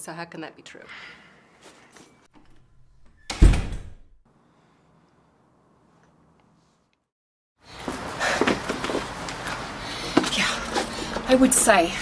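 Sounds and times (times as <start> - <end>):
door slamming shut: 3.0 - 4.1.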